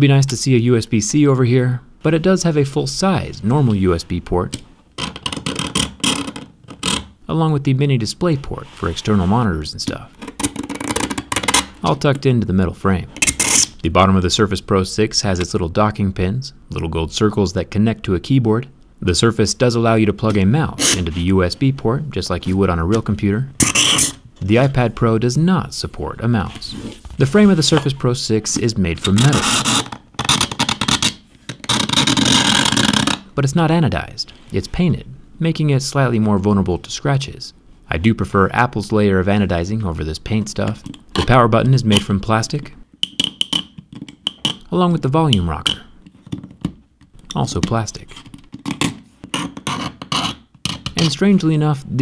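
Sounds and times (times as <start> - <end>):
knife blade scraping metal: 13.2 - 13.8, 23.6 - 24.2.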